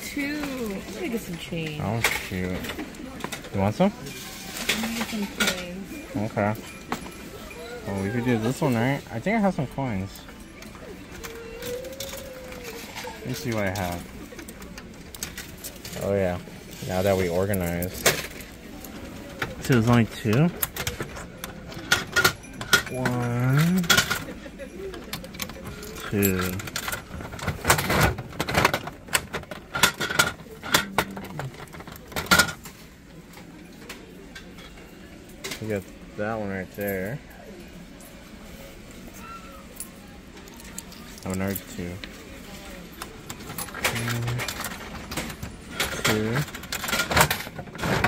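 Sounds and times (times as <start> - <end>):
coins clinking into coin slot: 0.2 - 37.2, 39.2 - 48.0.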